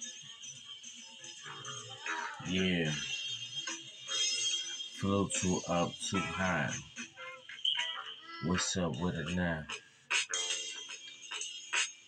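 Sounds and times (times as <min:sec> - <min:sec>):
hip-hop beat: 0:02.0 - 0:03.3, 0:04.9 - 0:07.2, 0:07.8 - 0:10.7
person rapping: 0:02.1 - 0:03.0, 0:05.0 - 0:06.8, 0:08.4 - 0:09.7.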